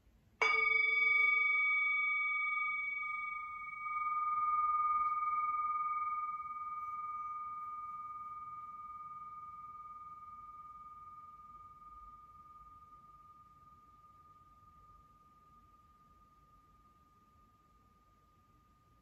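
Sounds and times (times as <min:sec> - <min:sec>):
meditation bell ringing: 0:00.4 - 0:19.0.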